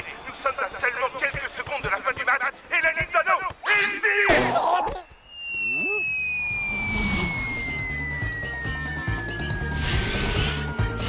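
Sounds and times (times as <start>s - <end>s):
cartoon whistle falling in pitch: 5.2s - 10.2s.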